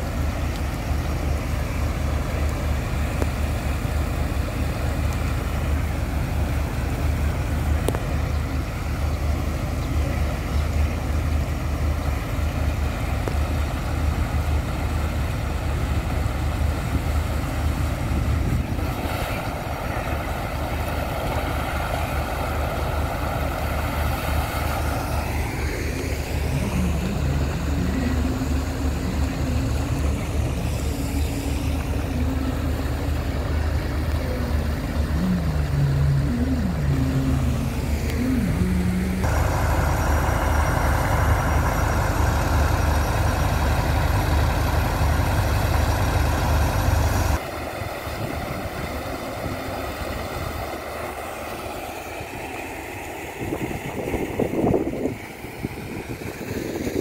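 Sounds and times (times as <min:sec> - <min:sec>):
pump engine throbbing: 0:00.0 - 0:57.0.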